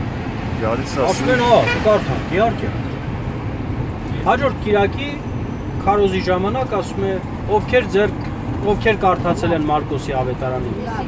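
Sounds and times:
car rumbling inside cabin: 0:00.0 - 0:11.0.

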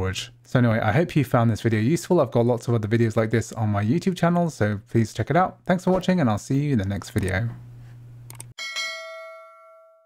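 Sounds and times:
notification bell ding: 0:08.6 - 0:10.0.

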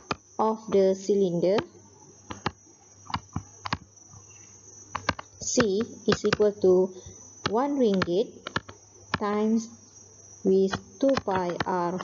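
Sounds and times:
stylus clicking on tablet screen: 0:00.0 - 0:00.8, 0:02.3 - 0:03.9, 0:04.9 - 0:06.6, 0:07.4 - 0:09.3, 0:10.7 - 0:12.0
faint high-pitched whine: 0:00.0 - 0:12.0.

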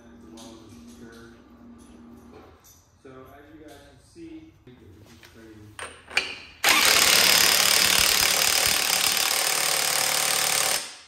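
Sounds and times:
impact wrench hammering: 0:05.8 - 0:11.0.

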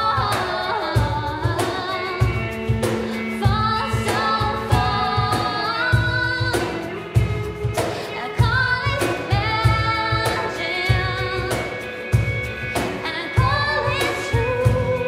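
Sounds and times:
acoustic and electric guitar: 0:00.0 - 0:15.0
light percussion: 0:00.0 - 0:15.0
woman singing: 0:00.0 - 0:15.0.

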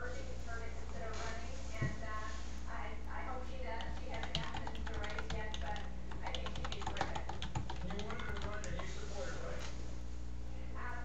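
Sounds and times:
steady low hum: 0:00.0 - 0:11.0
computer keyboard typing: 0:03.8 - 0:08.9.

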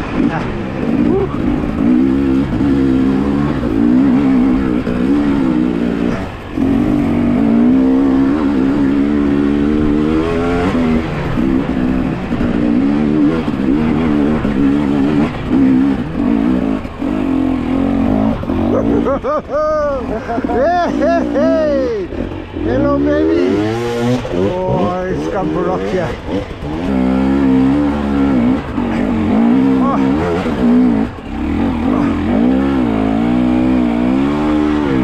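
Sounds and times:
dirt bike engine revving: 0:00.0 - 0:35.0.

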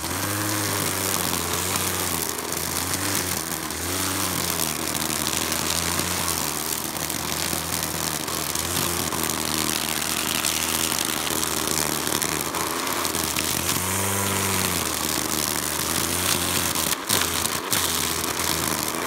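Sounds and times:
string trimmer cutting weeds: 0:00.0 - 0:19.0.

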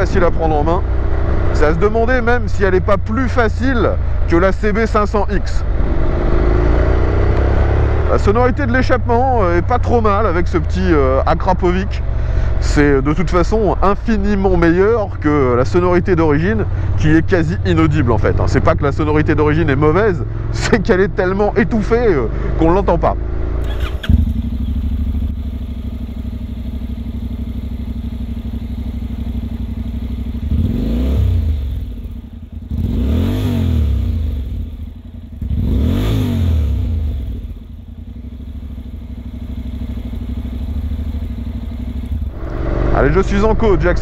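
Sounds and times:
motorcycle engine idling and revving: 0:00.0 - 0:44.0.

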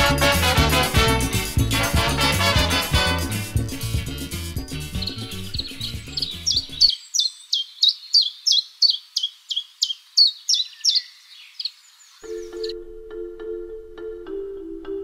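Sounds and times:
music: 0:00.0 - 0:06.9, 0:12.2 - 0:15.0
songbird chirping and trilling: 0:04.6 - 0:15.0.

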